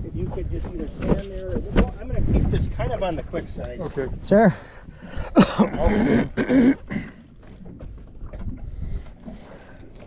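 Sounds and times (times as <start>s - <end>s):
wind on microphone: 0.0s - 6.4s, 7.6s - 9.5s
water lapping against hull: 0.0s - 10.0s.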